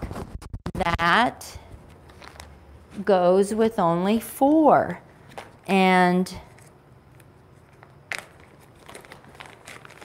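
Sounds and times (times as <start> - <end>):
plastic bag crinkling: 1.9 - 2.6, 6.5 - 10.0.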